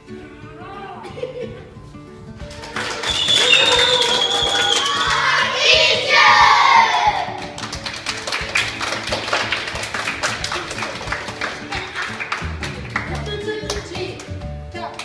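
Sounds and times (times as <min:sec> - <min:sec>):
background music: 0:00.0 - 0:15.0
hand clapping: 0:02.4 - 0:05.3, 0:07.3 - 0:15.0
children cheering and shouting: 0:02.8 - 0:07.4.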